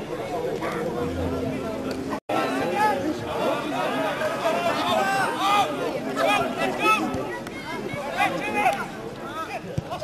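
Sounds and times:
overlapping voices chatter: 0:00.0 - 0:10.0.

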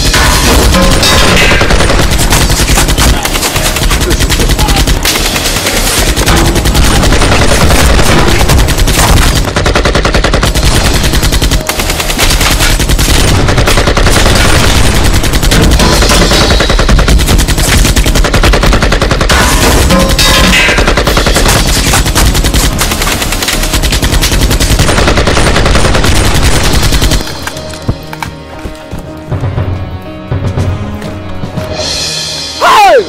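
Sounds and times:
automatic rifle fire: 0:00.0 - 0:27.4.

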